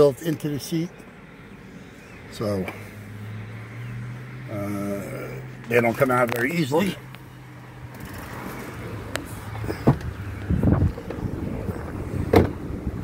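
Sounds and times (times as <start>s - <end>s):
rumbling shuffle: 8.4s - 13.0s
car door shutting: 9.5s - 12.9s.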